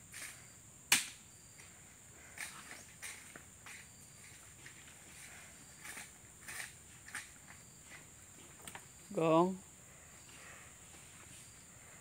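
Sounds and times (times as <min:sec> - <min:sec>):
faint high insect buzz: 0:00.0 - 0:12.0.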